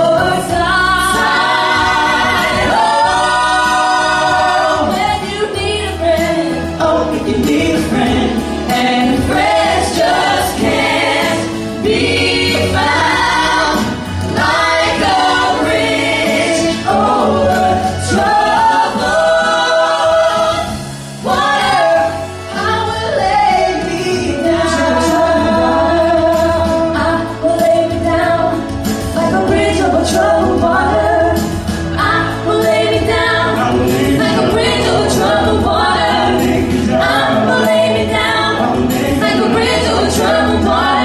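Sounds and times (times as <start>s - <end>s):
vocal group singing in harmony: 0.0s - 41.0s.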